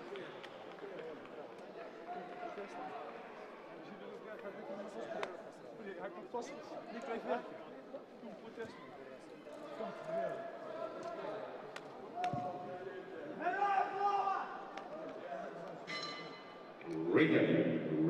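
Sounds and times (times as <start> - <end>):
people talking indistinctly: 0.0 - 18.0.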